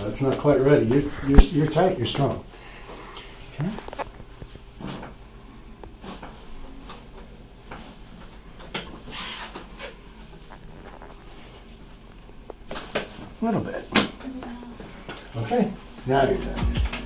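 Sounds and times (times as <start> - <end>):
rustling of socks and clothing: 5.9 - 14.0.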